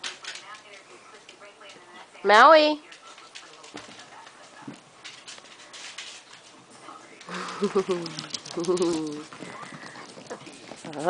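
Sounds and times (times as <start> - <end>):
puppy paws clicking on hard floor: 0.0 - 11.0.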